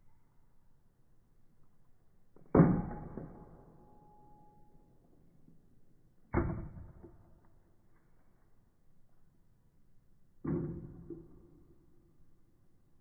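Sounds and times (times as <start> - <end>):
faint ringing tone: 3.8 - 5.2.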